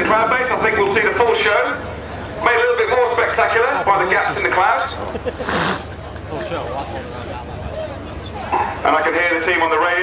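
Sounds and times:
amplified commentator voice: 0.0s - 5.0s, 8.6s - 10.0s.

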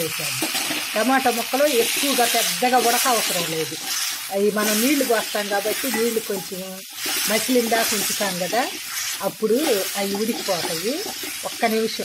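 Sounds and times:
vegetables sizzling in hot oil: 0.0s - 12.0s
wooden spatula stirring: 1.8s - 12.0s.

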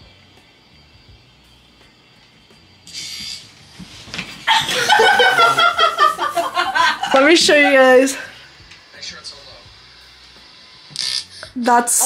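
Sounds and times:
short hiss-like burst: 2.9s - 3.6s
young women laughing and squealing: 4.5s - 8.3s.

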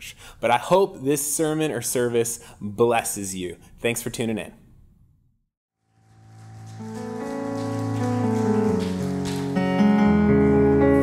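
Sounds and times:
sustained keyboard chords: 5.9s - 11.0s
worship band music: 5.9s - 11.0s.

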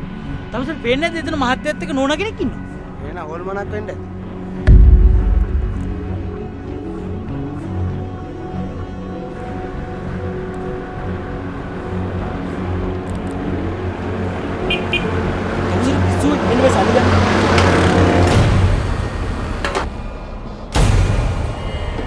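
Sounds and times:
steady low hum: 4.7s - 6.8s.

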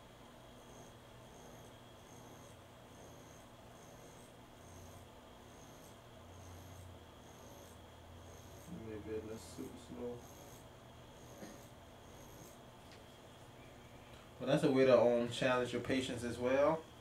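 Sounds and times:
tattoo machine humming: 0.0s - 17.0s
needle scratching: 9.6s - 12.6s.

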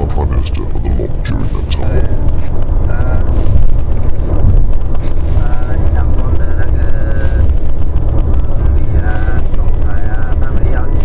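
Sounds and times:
man talking: 0.0s - 3.4s, 5.3s - 7.5s, 8.5s - 11.0s
car engine and tyres rumbling: 0.0s - 11.0s.

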